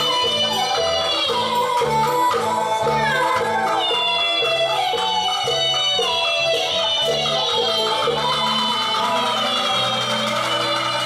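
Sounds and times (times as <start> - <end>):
traditional ensemble music: 0.0 - 11.0.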